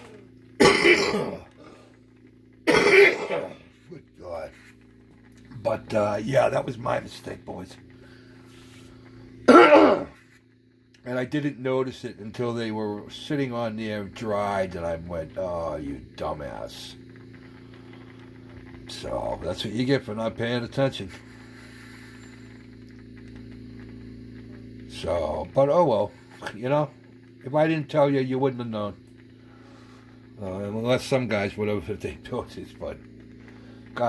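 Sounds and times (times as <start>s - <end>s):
faint steady hum: 0.0s - 34.0s
man clearing his throat: 0.6s - 1.5s, 2.7s - 3.6s, 9.5s - 10.2s.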